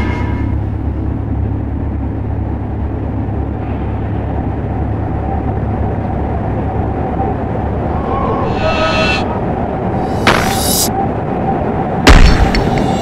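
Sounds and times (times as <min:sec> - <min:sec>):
loud low rumble drone: 0:00.0 - 0:13.0.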